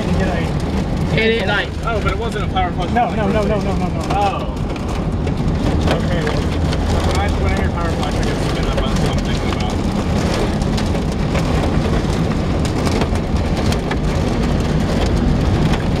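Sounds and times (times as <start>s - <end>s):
heavy rain hitting a car: 0.0s - 16.0s
low rumble of car on road: 0.0s - 16.0s
sharp ticks of raindrops: 0.0s - 16.0s.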